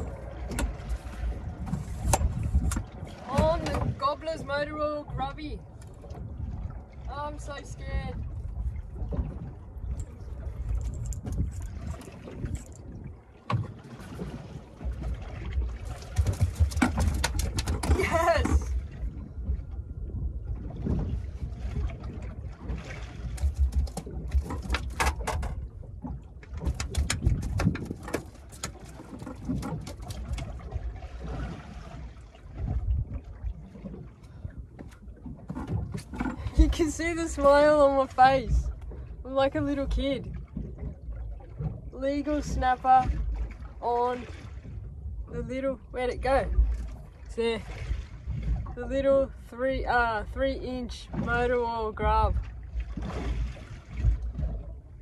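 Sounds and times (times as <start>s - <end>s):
boat noise: 0.0s - 55.0s
knocks and rattles on boat: 0.0s - 55.0s
wind rumble: 0.0s - 55.0s
person exclaiming excitedly: 17.9s - 18.7s.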